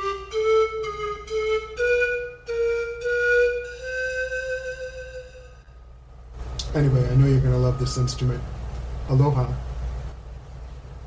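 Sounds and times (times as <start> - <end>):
pan flute playing: 0.0 - 6.0, 6.9 - 8.5.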